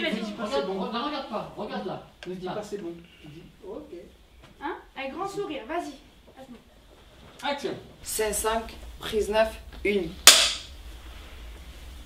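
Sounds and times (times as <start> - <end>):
clapperboard clack: 10.3 - 10.7.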